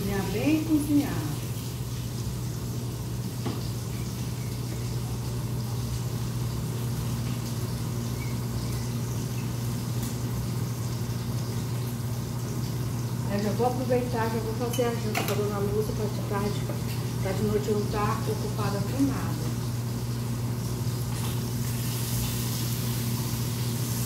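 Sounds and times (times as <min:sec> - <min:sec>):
low hum with faint hiss: 0:00.0 - 0:24.0.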